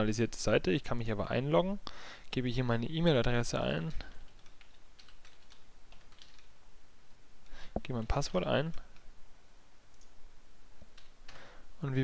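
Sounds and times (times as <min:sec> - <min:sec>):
computer keyboard clicks: 0:04.3 - 0:06.5.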